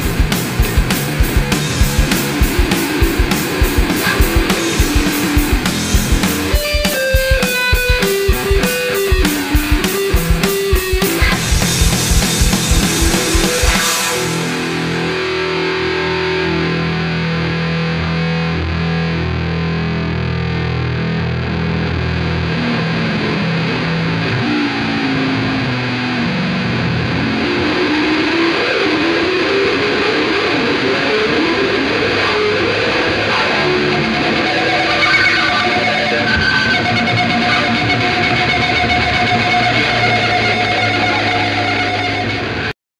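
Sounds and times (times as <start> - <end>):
distorted bass guitar solo: 0.0 - 42.7.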